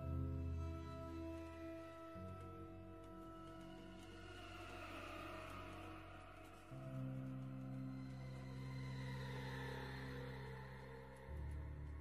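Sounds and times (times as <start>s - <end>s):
sustained ambient music tones: 0.0s - 12.0s.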